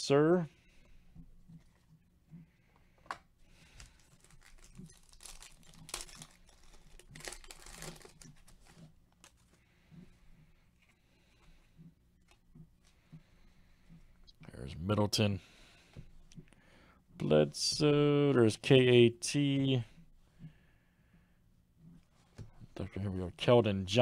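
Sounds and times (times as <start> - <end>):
foil pack crinkling and tearing: 3.6 - 9.5.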